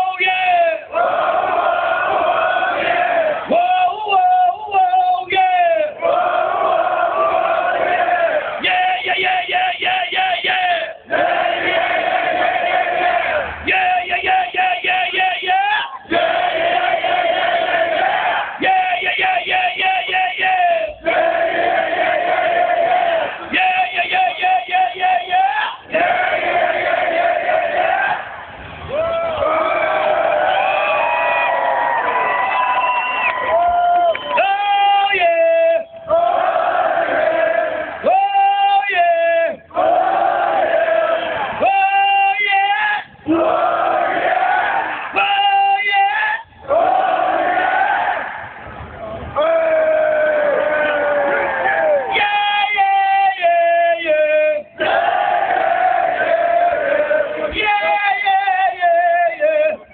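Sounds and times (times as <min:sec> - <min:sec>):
crowd chanting and singing: 0:00.6 - 0:04.4, 0:05.6 - 0:31.1, 0:33.5 - 0:38.1, 0:39.0 - 0:41.8, 0:43.0 - 0:45.2, 0:46.4 - 0:59.9.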